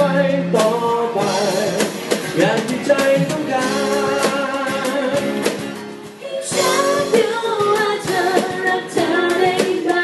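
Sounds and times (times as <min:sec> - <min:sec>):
guitar: 0:00.0 - 0:10.0
woman singing into a microphone: 0:06.2 - 0:10.0.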